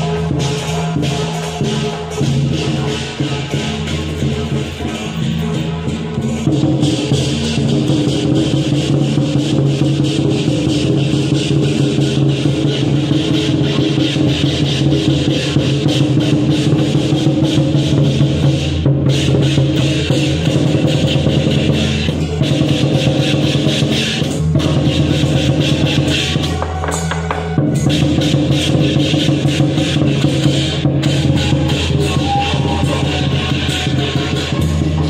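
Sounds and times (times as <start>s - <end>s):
drum and cymbal percussion music: 0.0s - 35.0s.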